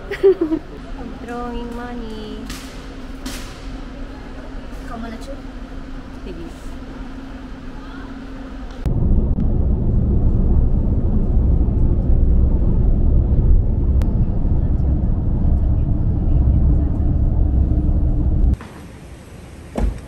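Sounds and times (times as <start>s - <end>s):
vehicle road and engine rumble: 0.8s - 20.0s.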